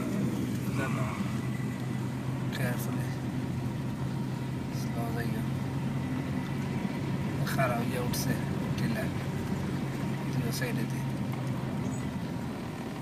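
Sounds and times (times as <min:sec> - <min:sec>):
car engine hum from inside cabin: 0:00.0 - 0:13.0
road noise hiss: 0:00.0 - 0:13.0.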